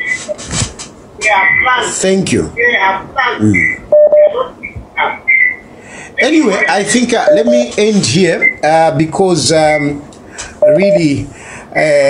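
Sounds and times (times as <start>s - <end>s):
loud steady beep: 3.9s - 4.4s, 6.5s - 7.7s, 10.6s - 11.2s.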